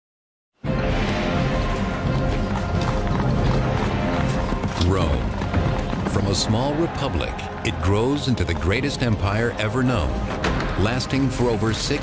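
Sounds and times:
music: 0.6s - 12.0s
horses galloping hoofbeats: 1.6s - 11.8s.

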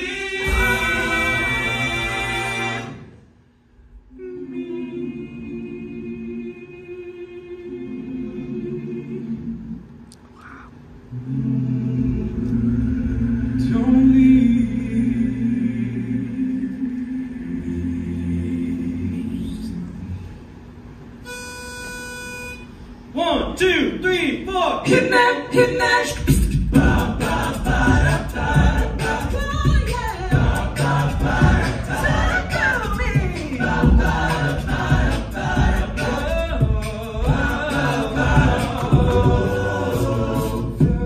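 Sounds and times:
male a cappella singing: 11.2s - 19.8s, 30.2s - 41.0s.

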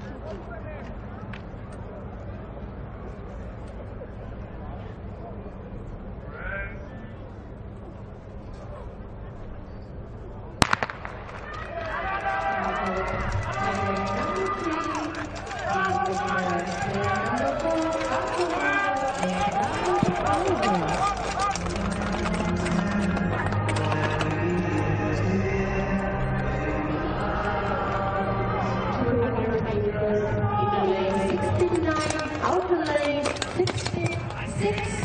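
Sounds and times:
starter's gun crack: 10.6s - 11.7s.

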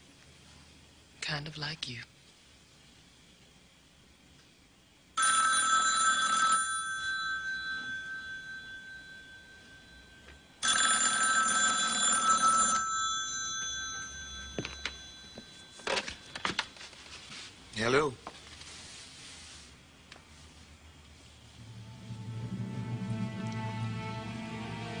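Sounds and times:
telephone bell ringing: 5.2s - 16.4s.

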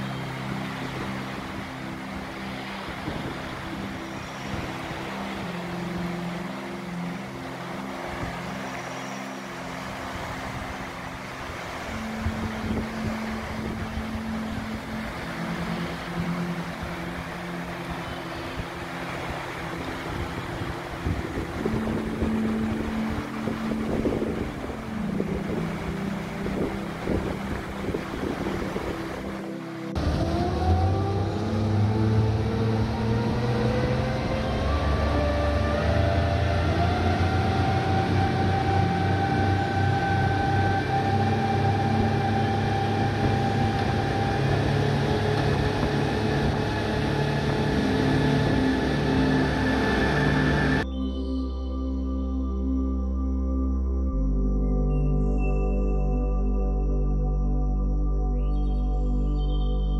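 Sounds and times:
outboard motors: 0.0s - 50.9s
rushing water: 0.0s - 50.9s
wind: 0.0s - 59.9s.

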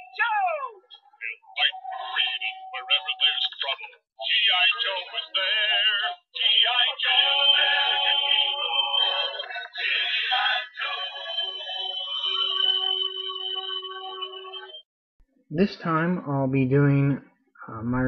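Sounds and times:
synthetic processed singing: 0.0s - 14.8s.

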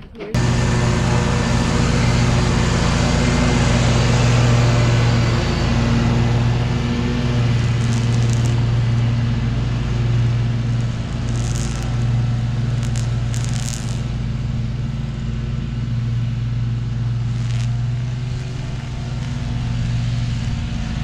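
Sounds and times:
engine running with loud hum: 0.0s - 21.0s.

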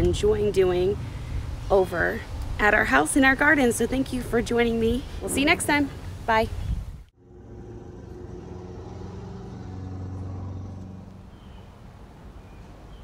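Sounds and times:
vehicle engine passing: 7.2s - 12.2s.

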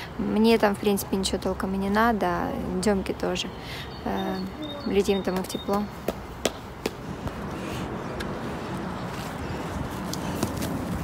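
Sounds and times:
wind noise on microphone: 6.9s - 11.0s.

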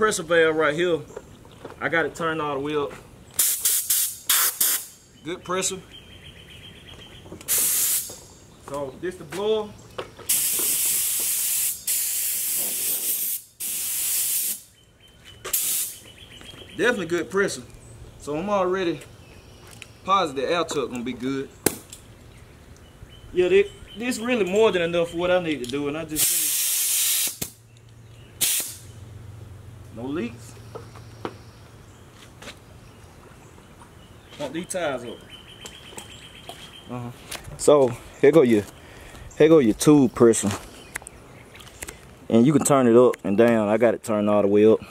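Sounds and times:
air blow gun hissing blasts: 3.4s - 5.0s, 7.5s - 8.2s, 10.3s - 14.7s, 15.5s - 16.0s, 26.2s - 27.6s, 28.4s - 28.9s.

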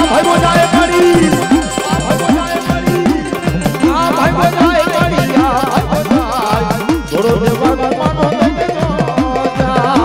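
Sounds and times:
deep thudding beat: 0.0s - 7.7s
wavering melody line: 0.0s - 7.7s.

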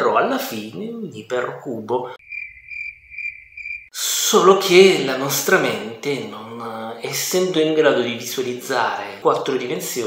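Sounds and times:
cricket chirping: 2.2s - 4.0s.

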